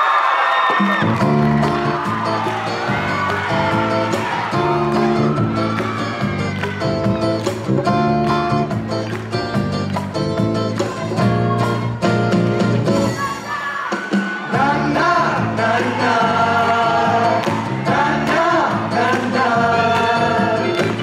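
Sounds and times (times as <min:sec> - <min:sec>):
live band playing: 0:00.8 - 0:21.0
many voices singing together: 0:14.4 - 0:21.0.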